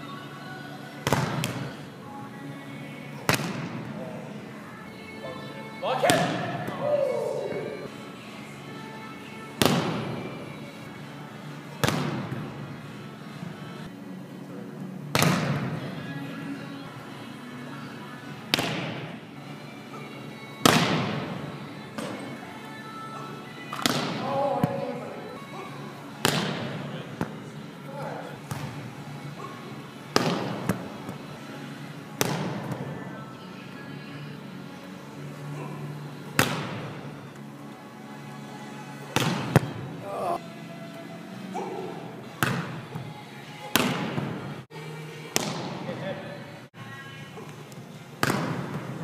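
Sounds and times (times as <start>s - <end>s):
volleyball slaps: 1.0s - 1.8s, 3.2s - 3.9s, 6.1s - 6.9s, 9.6s - 10.2s, 11.8s - 12.5s, 15.1s - 15.8s, 18.5s - 19.2s, 20.6s - 21.4s, 23.7s - 24.9s, 26.2s - 27.4s, 28.4s - 28.9s, 30.1s - 31.2s, 32.2s - 33.0s, 36.3s - 37.0s, 39.1s - 40.0s, 42.3s - 43.0s, 43.7s - 44.4s, 45.3s - 45.9s, 48.2s - 49.0s.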